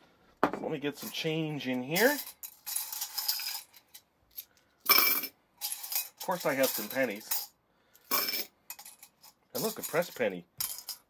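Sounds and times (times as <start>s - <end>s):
coins clinking and rattling: 1.9s - 11.0s.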